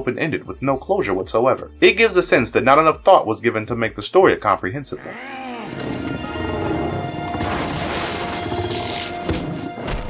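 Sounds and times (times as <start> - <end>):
cartoon creature growl: 5.0 - 7.2
dramatic background music: 5.0 - 10.0.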